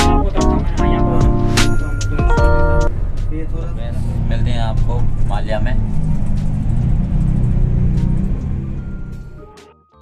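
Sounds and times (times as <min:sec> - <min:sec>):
bus engine rumble: 0:00.0 - 0:09.6.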